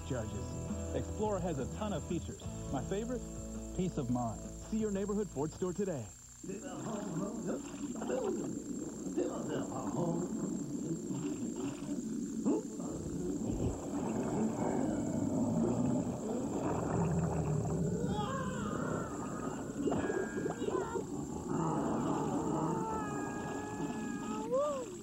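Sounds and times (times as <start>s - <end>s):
cartoon creature vocal noises: 6.5s - 25.0s.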